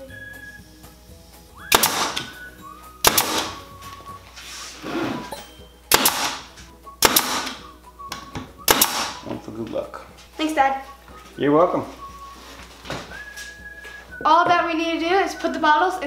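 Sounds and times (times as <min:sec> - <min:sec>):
nail gun shots with hiss: 0:01.7 - 0:02.4, 0:03.0 - 0:03.6, 0:05.9 - 0:07.6, 0:08.6 - 0:09.2.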